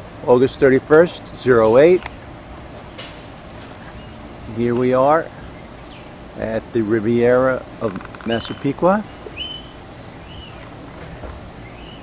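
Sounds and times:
bird chirping: 0:02.1 - 0:06.2, 0:07.6 - 0:12.0.

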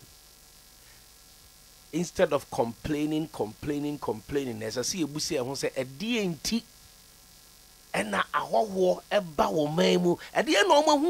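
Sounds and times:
faint electrical mains hum: 0:00.0 - 0:11.0
person speaking: 0:02.0 - 0:06.7, 0:07.9 - 0:11.0.

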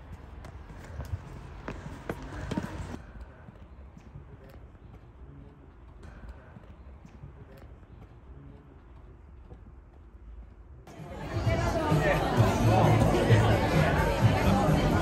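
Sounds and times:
footsteps on pavement: 0:00.0 - 0:10.6
low street rumble: 0:00.0 - 0:15.0.

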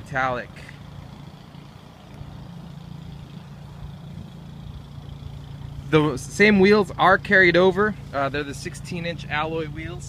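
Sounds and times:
car engine idling: 0:00.0 - 0:10.0
faint outdoor background noise: 0:00.0 - 0:10.0.

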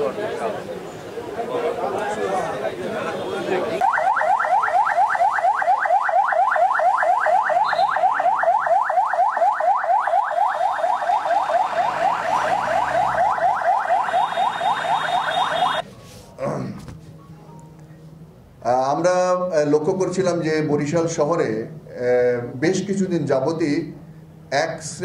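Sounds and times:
crowd voices: 0:00.0 - 0:03.9
police siren yelping: 0:03.8 - 0:15.8.

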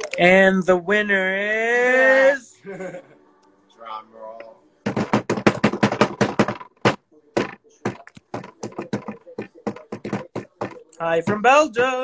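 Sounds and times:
hands slapping a surface: 0:04.9 - 0:11.4.

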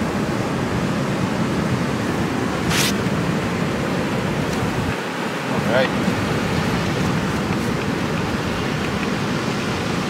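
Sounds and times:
ocean surf breaking: 0:00.0 - 0:10.0.

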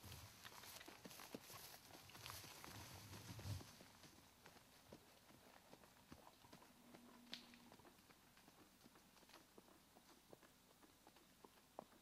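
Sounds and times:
horse hoofbeats on dirt: 0:00.0 - 0:12.0.

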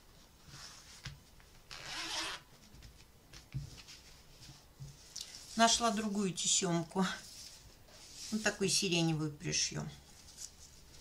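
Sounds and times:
zipper sliding: 0:01.7 - 0:02.5.

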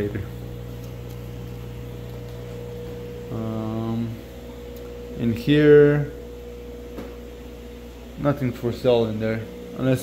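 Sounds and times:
aquarium equipment hum: 0:00.0 - 0:10.0.

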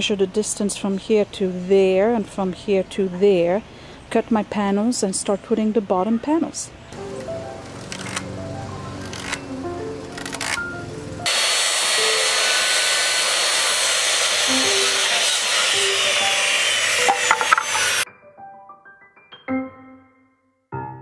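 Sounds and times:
piano background music: 0:06.9 - 0:12.8, 0:14.4 - 0:21.0
circular saw cutting wood: 0:11.2 - 0:18.0.

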